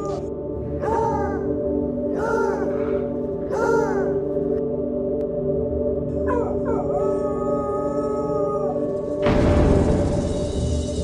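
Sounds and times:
low musical drone: 0:00.0 - 0:11.0
dog howling: 0:06.3 - 0:09.0.

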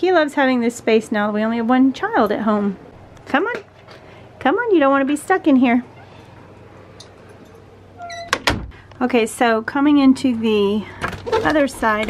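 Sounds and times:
door squeaking: 0:05.8 - 0:06.3, 0:07.9 - 0:08.8, 0:11.0 - 0:12.0
door closing thud: 0:08.0 - 0:08.8.

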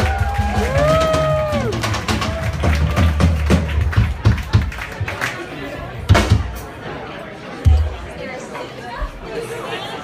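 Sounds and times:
person whooping: 0:00.0 - 0:01.8.

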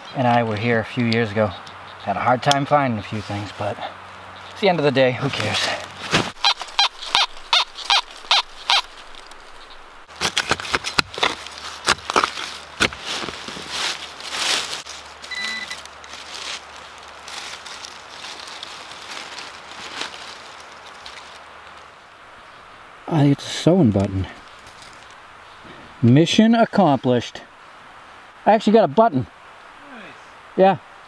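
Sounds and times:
dirt scraping: 0:04.5 - 0:21.9
leaves crunching: 0:04.5 - 0:22.2, 0:23.8 - 0:25.8
hand digger chopping soil: 0:10.1 - 0:13.7.

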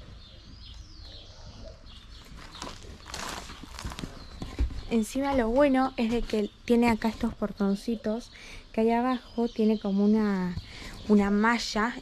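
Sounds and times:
footsteps on wood and gravel: 0:02.2 - 0:07.4.

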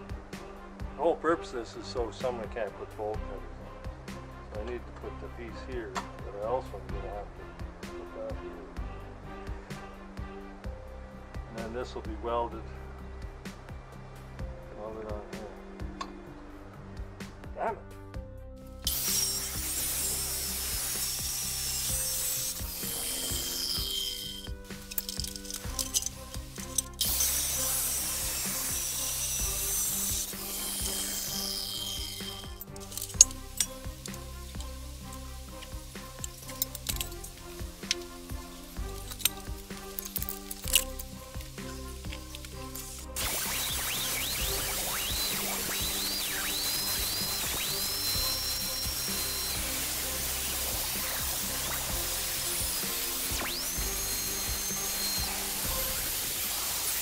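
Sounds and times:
background music: 0:00.0 - 0:57.0
angle grinder grinding steel: 0:18.8 - 0:57.0
chop saw cutting steel: 0:18.8 - 0:57.0.

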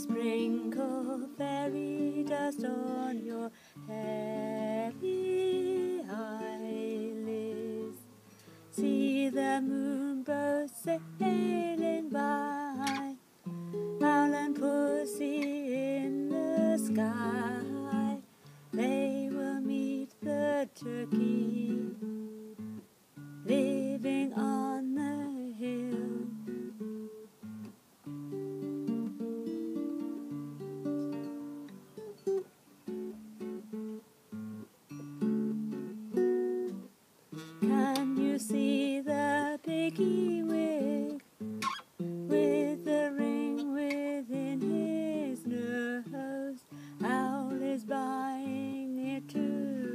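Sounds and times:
woman singing: 0:00.0 - 0:08.1, 0:08.7 - 0:22.4, 0:23.4 - 0:26.8, 0:37.5 - 0:41.3, 0:42.2 - 0:49.9
acoustic guitar picked slowly: 0:00.0 - 0:49.9.

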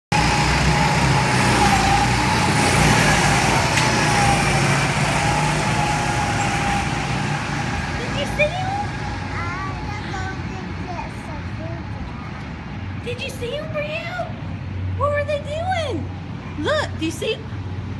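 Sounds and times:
go-kart engines droning: 0:00.1 - 0:10.8.

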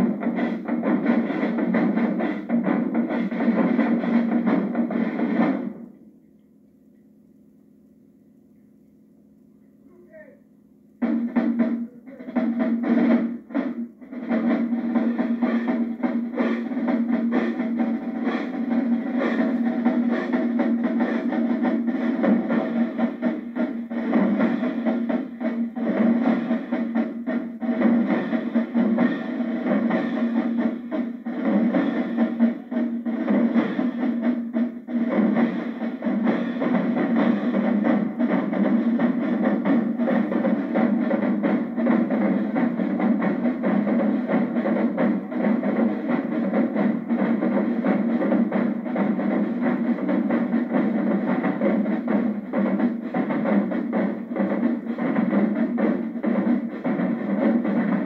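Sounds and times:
bass drums: 0:00.0 - 0:06.0, 0:11.0 - 0:58.0
snare drums: 0:00.0 - 0:06.0, 0:09.9 - 0:58.0.

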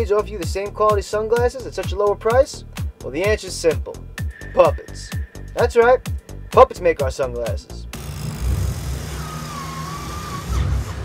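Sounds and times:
thin whistle-like tone: 0:04.2 - 0:06.6, 0:09.2 - 0:10.6.

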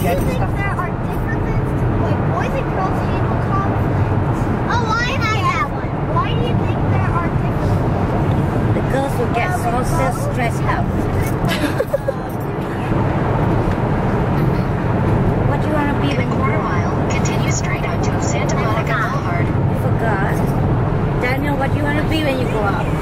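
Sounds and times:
people talking: 0:00.0 - 0:04.1, 0:04.7 - 0:08.0, 0:08.8 - 0:13.0, 0:15.5 - 0:20.5, 0:21.2 - 0:23.0
road and engine rumble in car: 0:00.0 - 0:23.0.

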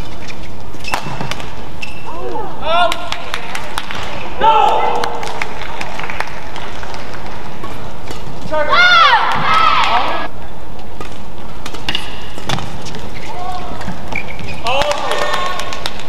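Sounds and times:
shoe squeaks on court: 0:00.0 - 0:02.1, 0:12.0 - 0:14.7
arena background noise: 0:00.0 - 0:16.0
rackets striking shuttlecock: 0:10.8 - 0:13.0.

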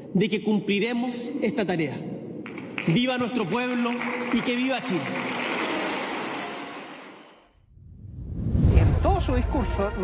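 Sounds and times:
audience applauding: 0:02.4 - 0:07.5.

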